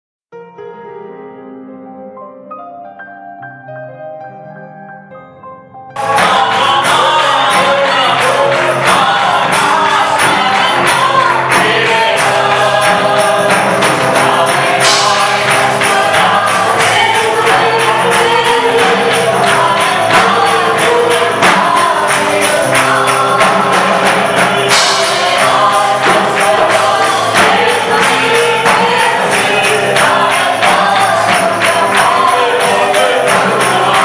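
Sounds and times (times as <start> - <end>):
instrumental accompaniment with beat: 5.9 - 34.0
group singing worship music: 6.0 - 34.0.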